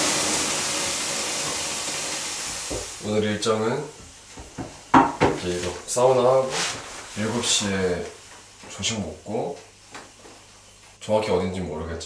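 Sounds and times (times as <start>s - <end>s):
man speaking: 5.4s - 9.6s.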